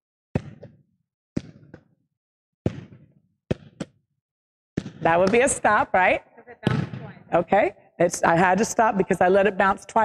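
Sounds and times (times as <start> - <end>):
ball thuds in a hall: 0.3 - 4.2, 4.8 - 5.9, 6.6 - 7.4.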